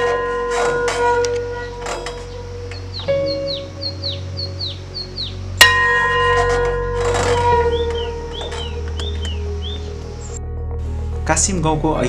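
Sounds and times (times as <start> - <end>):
bird chirping: 1.1 - 5.7, 7.2 - 10.4
bell ringing: 5.6 - 8.8.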